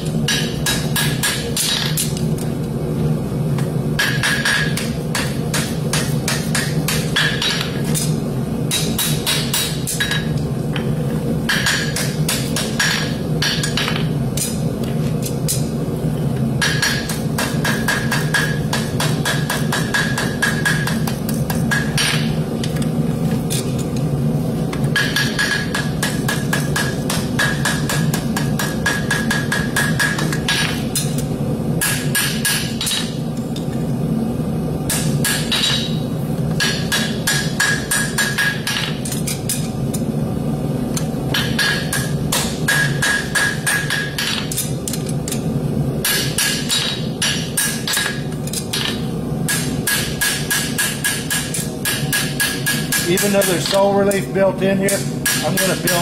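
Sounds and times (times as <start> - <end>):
hammer striking horseshoe on anvil: 0.3 - 2.2, 4.0 - 8.1, 8.7 - 10.4, 11.5 - 14.6, 16.6 - 22.4, 24.9 - 31.2, 31.8 - 33.2, 34.9 - 36.0, 36.6 - 39.7, 41.3 - 45.0, 46.0 - 54.2, 54.9 - 56.0.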